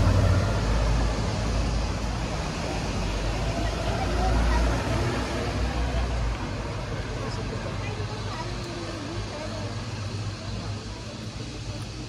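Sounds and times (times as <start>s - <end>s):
passing vehicle rumble: 0.0s - 12.0s
people talking indistinctly: 1.8s - 12.0s.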